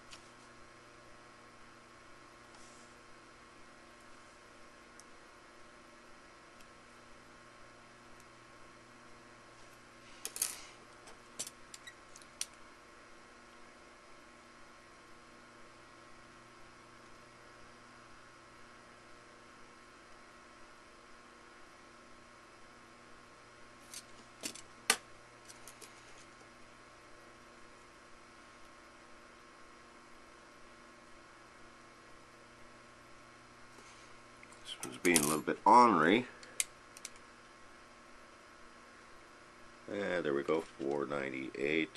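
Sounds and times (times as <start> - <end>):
faint steady hum: 0.0 - 41.9.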